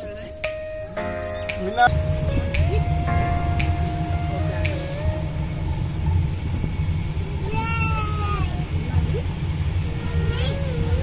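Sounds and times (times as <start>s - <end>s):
low rumble of cart driving: 1.9s - 11.0s.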